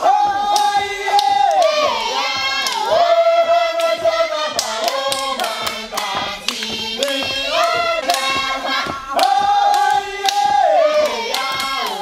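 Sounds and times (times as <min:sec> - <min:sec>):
sharp hand claps: 0:00.0 - 0:02.9, 0:03.8 - 0:12.0
women singing long held notes: 0:00.0 - 0:12.0.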